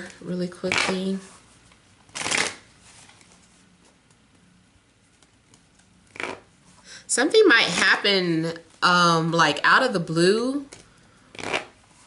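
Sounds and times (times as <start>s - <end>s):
cards being shuffled: 5.1s - 6.5s.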